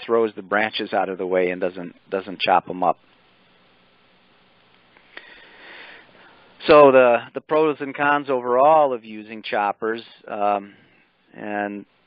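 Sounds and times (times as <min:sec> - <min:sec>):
person breathing in through nose: 0:05.1 - 0:06.5.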